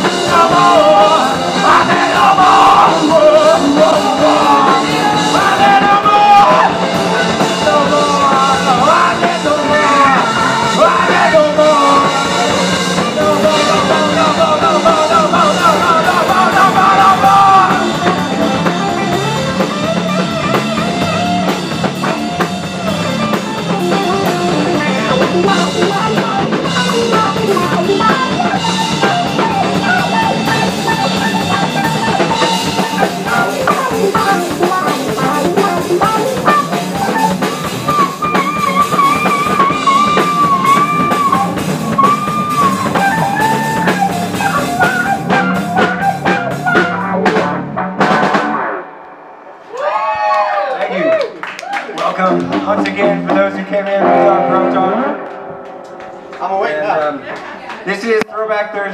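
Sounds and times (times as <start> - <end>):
bending lead guitar line: 0.0 - 49.8, 51.9 - 58.2
electric guitar: 0.0 - 49.8, 50.5 - 58.2
bass guitar: 0.0 - 50.8, 51.7 - 58.2
drum kit: 0.0 - 58.2.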